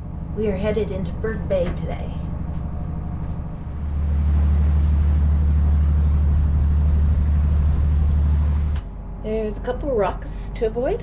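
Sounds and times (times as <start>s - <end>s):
diesel engine drone: 0.0s - 11.0s.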